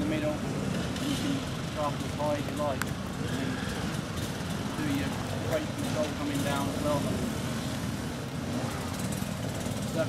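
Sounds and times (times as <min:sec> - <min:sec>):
motorcycle engines idling: 0:00.0 - 0:10.0.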